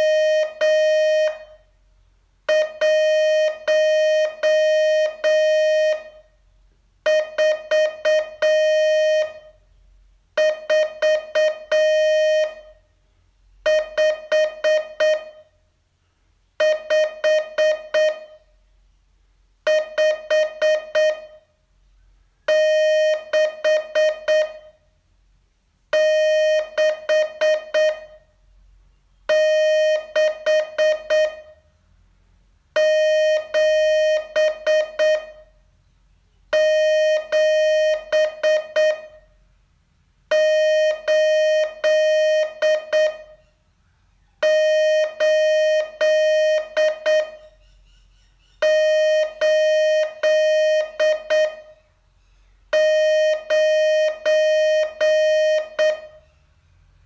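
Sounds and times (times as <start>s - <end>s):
morse code beeps: 0.0s - 1.6s, 2.5s - 6.2s, 7.1s - 9.5s, 10.4s - 12.8s, 13.6s - 15.5s, 16.6s - 18.4s, 19.7s - 21.4s, 22.5s - 24.8s, 26.0s - 28.2s, 29.3s - 31.6s, 32.8s - 35.5s, 36.5s - 39.2s, 40.3s - 43.4s, 44.4s - 47.6s, 48.6s - 51.8s, 52.7s - 56.2s.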